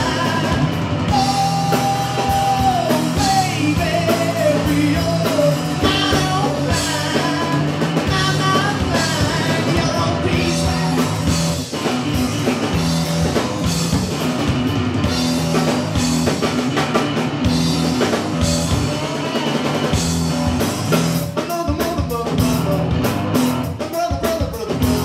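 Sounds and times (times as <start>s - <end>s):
drum kit: 0.0s - 25.0s.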